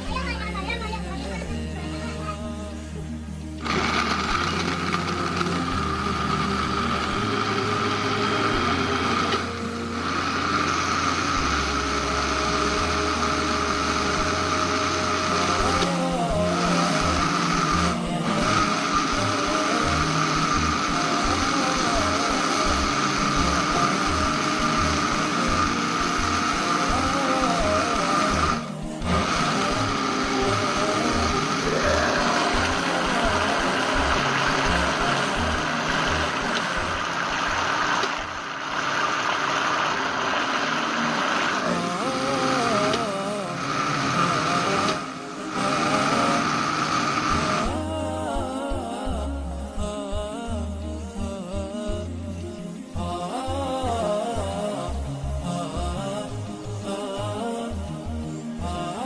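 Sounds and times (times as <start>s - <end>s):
background music with a beat: 0.0s - 38.8s, 39.4s - 59.0s
blender motor whine: 3.5s - 47.9s.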